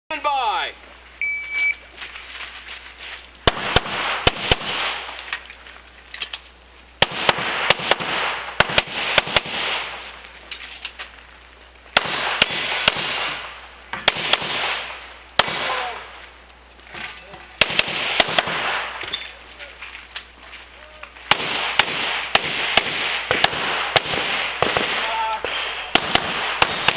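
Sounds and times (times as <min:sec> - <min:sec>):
pistol shots in double taps: 0:21.3 - 0:26.9.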